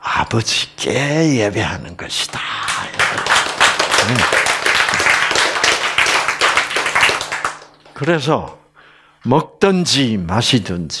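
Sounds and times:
audience applauding: 0:02.7 - 0:07.9.

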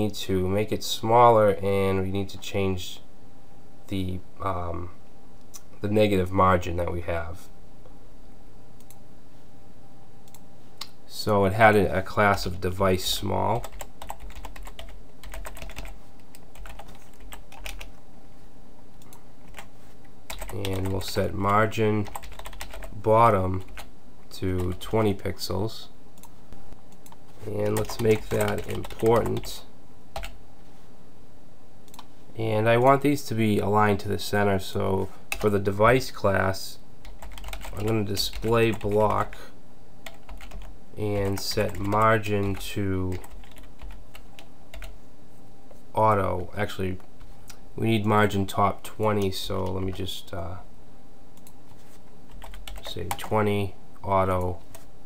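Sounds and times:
faint low hum: 0:00.0 - 0:55.0
typing on computer keyboard: 0:13.6 - 0:17.9, 0:20.3 - 0:21.2, 0:22.0 - 0:22.9, 0:27.8 - 0:29.5, 0:37.1 - 0:39.0, 0:40.0 - 0:40.7, 0:52.3 - 0:53.3.

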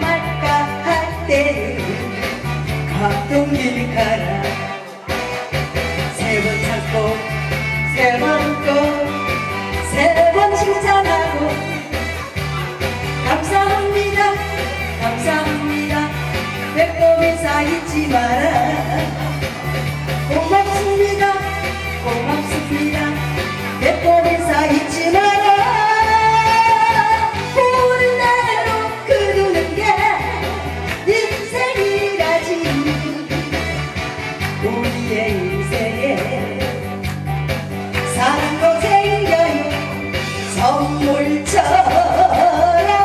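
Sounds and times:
woman singing into microphone: 0:00.0 - 0:05.1, 0:06.0 - 0:12.4, 0:13.1 - 0:37.2, 0:37.9 - 0:43.0
backing music with bass and beat: 0:00.0 - 0:43.0.

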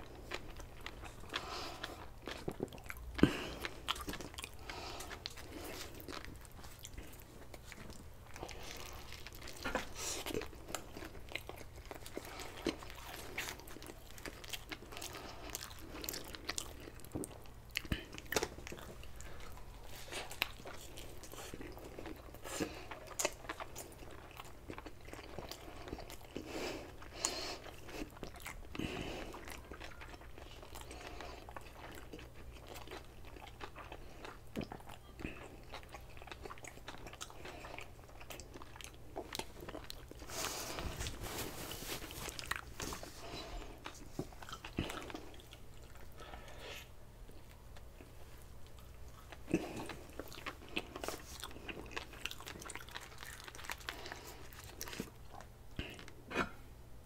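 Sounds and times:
wet chewing: 0:00.0 - 0:56.6
faint low hum: 0:00.0 - 0:57.0.

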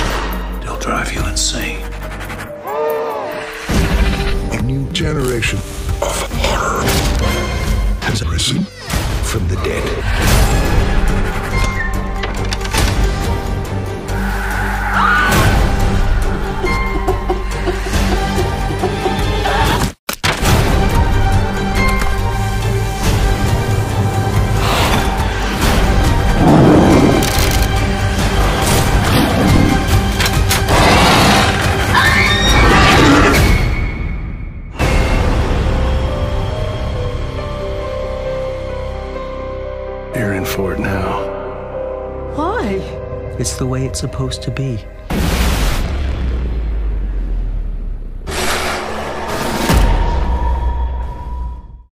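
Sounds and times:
loud rough sound effect: 0:45.1 - 0:50.2.

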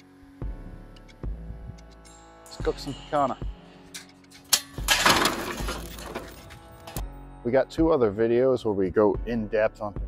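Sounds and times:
charcoal clattering into grill: 0:04.4 - 0:07.0.

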